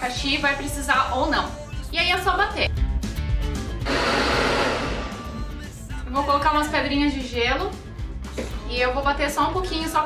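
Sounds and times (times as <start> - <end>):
background music: 0.0 - 10.0
blender running: 3.8 - 5.2.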